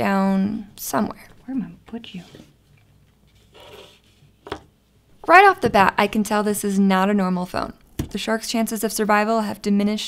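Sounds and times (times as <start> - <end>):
phone sliding on desk: 3.4 - 4.6.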